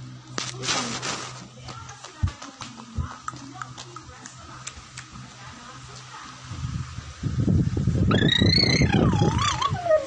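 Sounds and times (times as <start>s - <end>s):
high wavering squeal: 8.0s - 10.0s.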